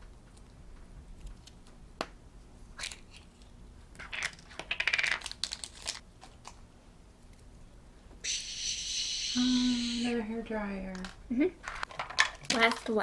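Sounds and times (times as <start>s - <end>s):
plastic capsule clicks and rattles: 4.1s - 6.0s.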